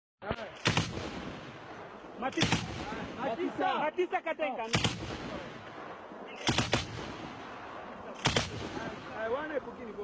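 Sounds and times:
gunshots echoing: 0:00.4 - 0:03.8, 0:04.6 - 0:09.6.

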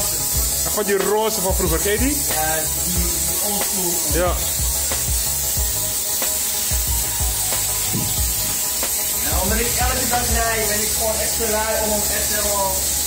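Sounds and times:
background music with low beat: 0:00.0 - 0:13.0
pressure washer spraying water: 0:00.0 - 0:13.0.

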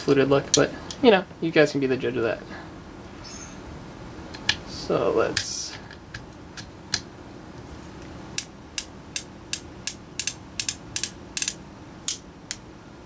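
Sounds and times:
revolver cylinder clicking: 0:08.4 - 0:12.6.

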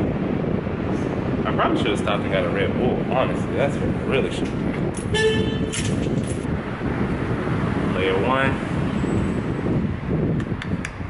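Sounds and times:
low rumbling on microphone: 0:00.0 - 0:11.0.

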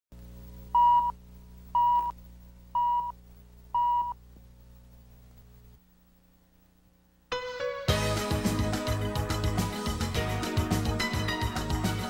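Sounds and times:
steady low hum: 0:00.2 - 0:07.3.

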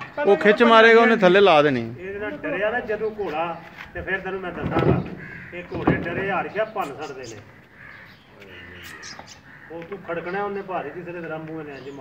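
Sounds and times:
man's voice: 0:00.0 - 0:07.5
bird calls: 0:02.2 - 0:12.0.

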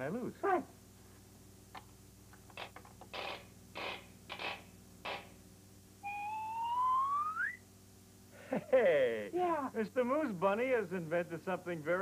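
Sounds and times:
rising whistle sound effect: 0:06.0 - 0:07.6.

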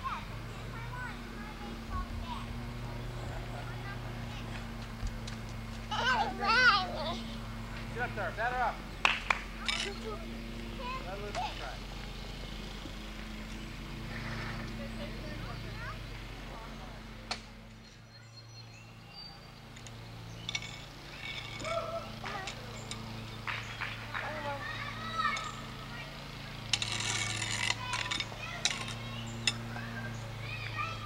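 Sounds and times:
small children's voices: 0:00.0 - 0:05.0, 0:05.9 - 0:07.5, 0:09.6 - 0:11.9, 0:14.1 - 0:16.6, 0:21.5 - 0:22.8, 0:24.2 - 0:31.0
steady low hum: 0:00.0 - 0:31.0.

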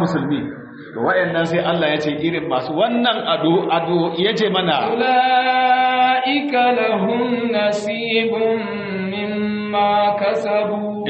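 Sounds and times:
man chanting recitation: 0:00.0 - 0:11.0.

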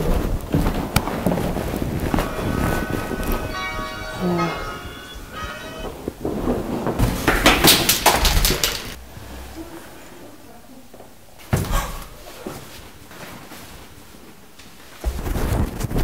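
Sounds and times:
ringing bell-like tone: 0:01.9 - 0:06.4.

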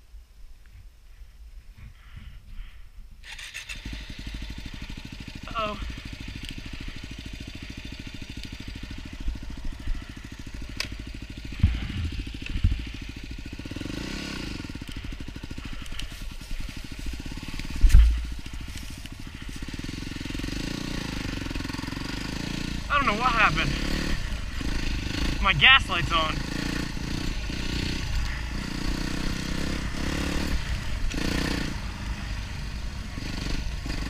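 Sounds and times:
dirt bike engine revving: 0:03.2 - 0:34.0.

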